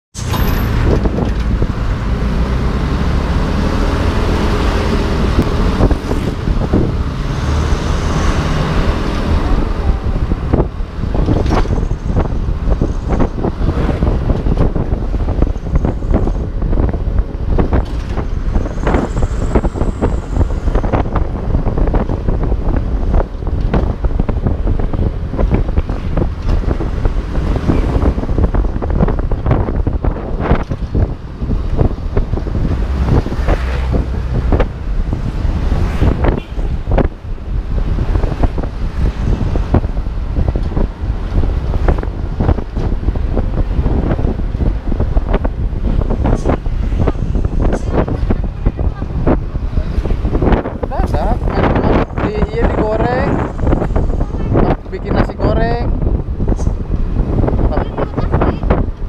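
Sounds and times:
road noise: 0.1 - 59.0
wind buffeting microphone: 0.2 - 59.0.

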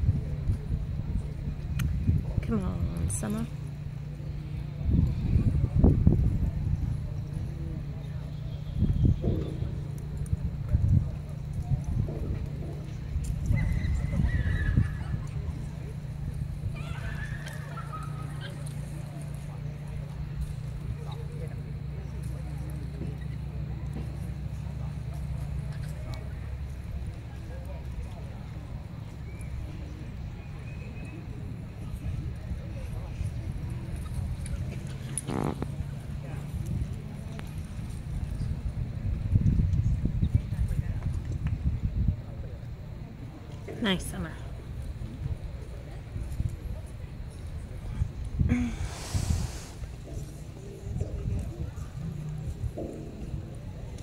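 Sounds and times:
steady low hum: 0.0 - 54.0
hooves thudding in dirt: 5.0 - 41.6, 44.5 - 54.0.

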